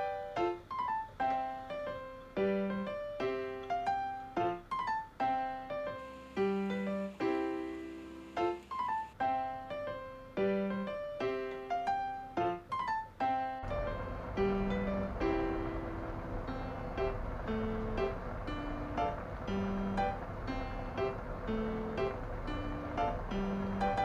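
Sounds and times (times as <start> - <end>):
piano melody: 0.0 - 24.0
steady noise: 5.9 - 9.2, 13.6 - 24.0.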